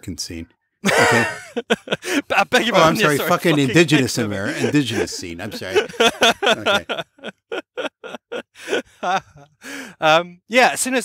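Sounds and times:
man laughing in breathy bursts: 0:00.8 - 0:10.0.

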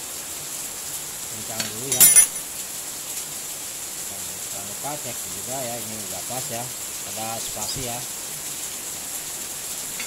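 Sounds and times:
metal tool clinking on metal: 0:01.6 - 0:02.4.

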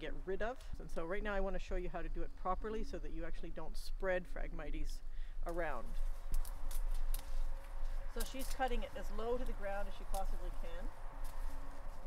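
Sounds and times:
secateurs snipping reed stems: 0:05.5 - 0:12.0.

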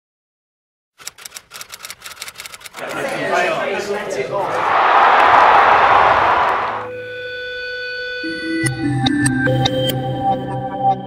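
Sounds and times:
sharp clicks: 0:01.0 - 0:03.0
hubbub of voices: 0:02.8 - 0:06.8.

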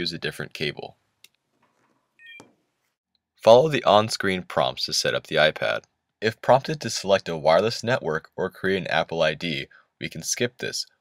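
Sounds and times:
faint electronic chime: 0:02.2 - 0:02.4.

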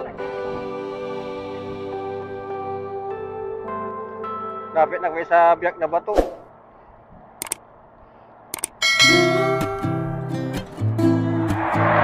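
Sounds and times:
mouse clicks: 0:07.4 - 0:07.6, 0:08.5 - 0:08.8.

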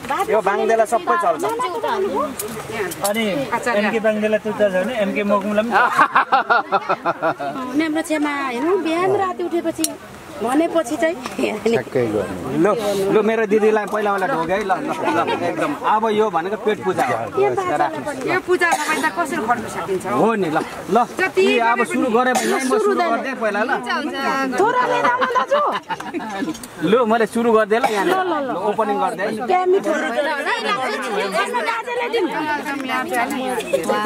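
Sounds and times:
people chattering: 0:00.0 - 0:34.0
people talking at once: 0:00.0 - 0:34.0.

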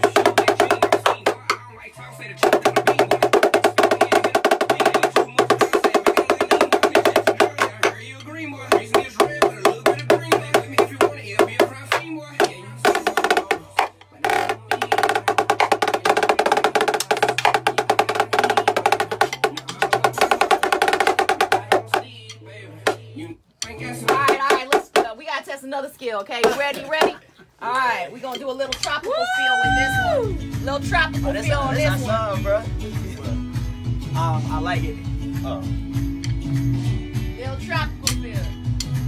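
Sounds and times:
backing music with bass line: 0:00.0 - 0:24.8, 0:28.9 - 0:39.0.

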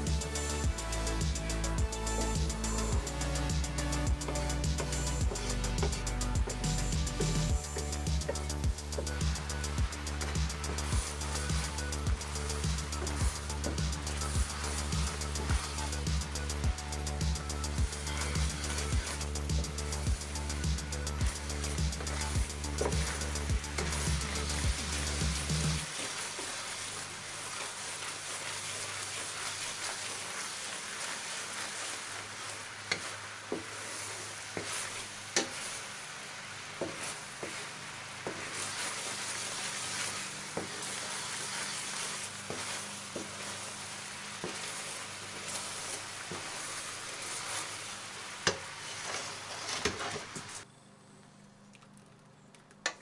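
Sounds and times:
background music: 0:00.0 - 0:25.9
sauce bubbling in a pan: 0:07.4 - 0:50.4.

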